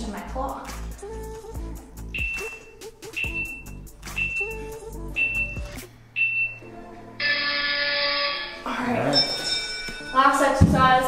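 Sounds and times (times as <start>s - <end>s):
background music with steady beat: 0.0s - 7.7s, 8.5s - 11.0s
short high timer beeps: 2.2s - 4.6s, 5.2s - 6.6s.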